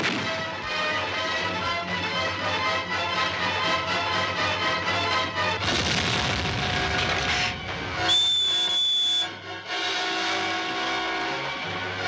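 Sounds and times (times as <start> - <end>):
dramatic orchestral music: 0.0 - 8.6, 9.3 - 12.0
shrill whistle blast: 8.0 - 9.4.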